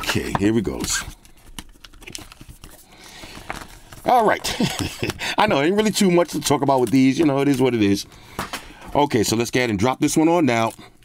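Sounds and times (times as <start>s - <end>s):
paper packaging rustling: 0.0s - 9.4s.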